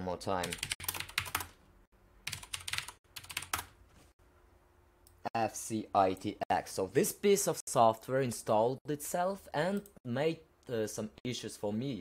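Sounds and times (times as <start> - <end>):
typing on computer keyboard: 0.4 - 1.5, 2.3 - 3.7.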